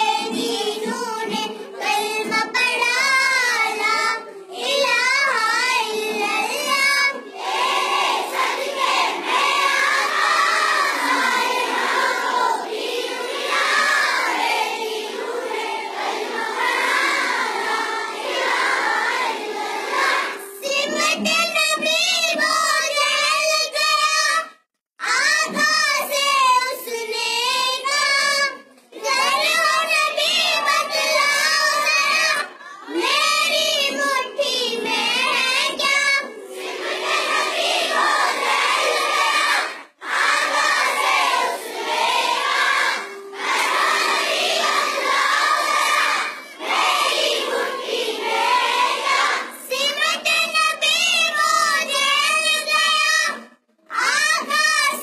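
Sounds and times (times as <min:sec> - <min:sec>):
girls singing together: 0:00.0 - 0:55.0.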